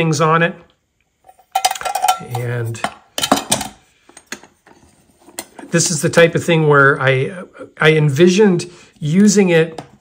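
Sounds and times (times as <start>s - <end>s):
metal mess tin clattering: 1.3s - 3.8s.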